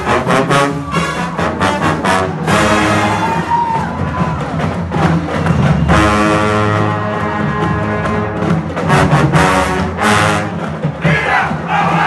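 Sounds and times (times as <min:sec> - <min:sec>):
crowd cheering and shouting: 0:00.0 - 0:06.4, 0:11.0 - 0:12.0
brass band chords: 0:00.0 - 0:12.0.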